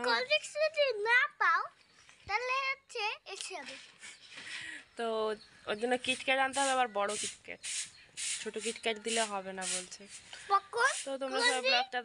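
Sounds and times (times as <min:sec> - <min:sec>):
woman talking: 0:05.0 - 0:07.6, 0:08.4 - 0:10.1, 0:10.8 - 0:12.0.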